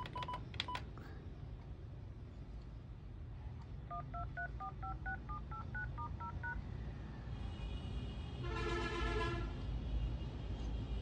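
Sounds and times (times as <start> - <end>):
touch-tone dialing beeps: 0.0 - 0.8, 3.9 - 6.6.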